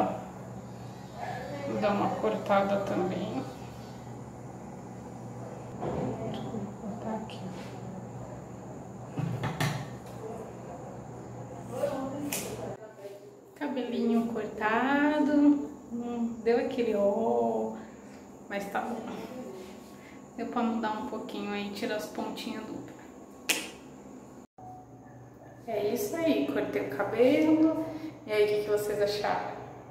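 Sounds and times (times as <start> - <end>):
steady low hum: 0.0 - 29.9.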